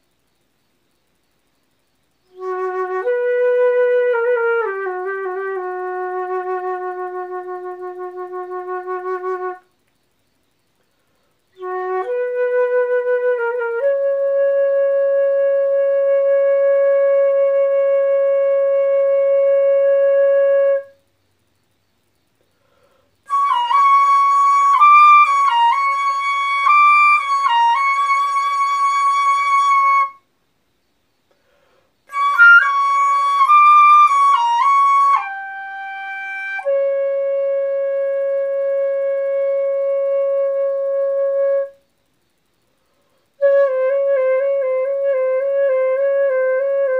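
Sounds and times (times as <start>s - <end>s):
solo flute playing: 2.3s - 9.7s, 11.5s - 21.0s, 23.3s - 30.3s, 32.1s - 41.9s, 43.4s - 46.9s.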